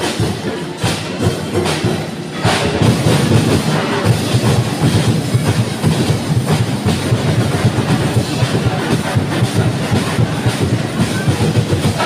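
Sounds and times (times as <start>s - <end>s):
loud percussion music: 0.0s - 12.0s.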